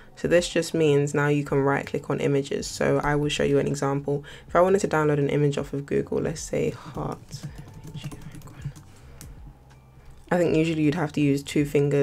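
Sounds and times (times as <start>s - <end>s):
laptop keyboard key taps: 7.0s - 9.4s.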